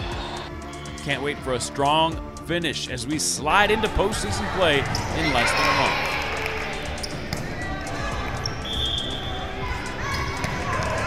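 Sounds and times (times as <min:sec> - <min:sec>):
high shoe squeak: 0:08.4 - 0:09.4.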